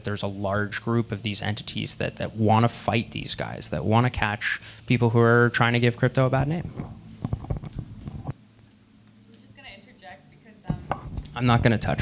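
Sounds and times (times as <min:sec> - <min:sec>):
low background hum: 0:00.0 - 0:12.0
microphone handling thumps: 0:06.4 - 0:08.4, 0:10.7 - 0:11.7.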